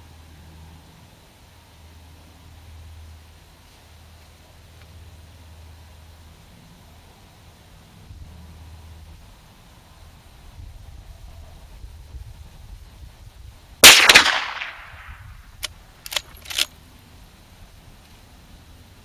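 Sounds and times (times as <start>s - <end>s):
rifle shot: 13.8s - 16.7s.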